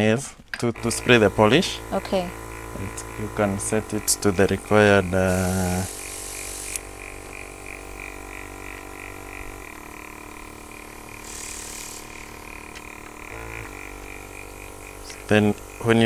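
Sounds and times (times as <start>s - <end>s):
small compressor humming: 0.6s - 16.0s
airbrush spray hiss: 4.4s - 8.2s, 11.0s - 12.8s.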